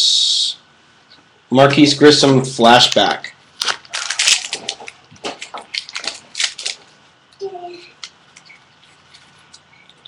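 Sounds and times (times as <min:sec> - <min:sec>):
foil pack crinkling and tearing: 0:03.6 - 0:06.9.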